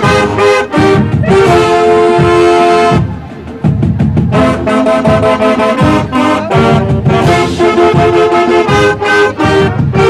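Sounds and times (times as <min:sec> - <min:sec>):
drum hits: 0:00.0 - 0:10.0
marching band brass chords: 0:00.0 - 0:10.0.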